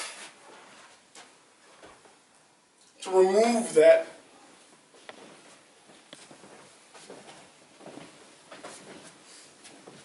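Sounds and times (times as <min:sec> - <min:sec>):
man's voice: 0:03.0 - 0:04.2.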